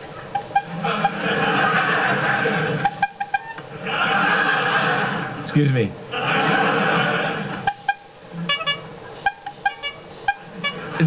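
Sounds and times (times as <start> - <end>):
studio audience laughter: 0.6 - 5.5, 6.1 - 7.8, 10.4 - 11.0
high-pitched squeaky toots: 2.8 - 3.6, 7.6 - 11.0.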